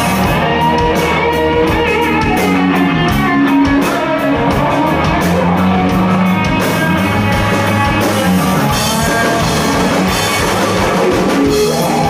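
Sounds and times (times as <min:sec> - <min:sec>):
bass guitar: 0:00.0 - 0:12.0
drums: 0:00.0 - 0:12.0
electric guitar lead line: 0:00.0 - 0:12.0.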